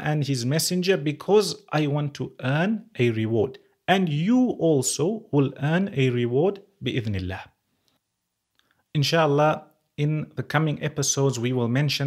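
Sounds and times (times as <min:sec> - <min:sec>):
man speaking: 0:00.0 - 0:07.6, 0:08.9 - 0:12.0.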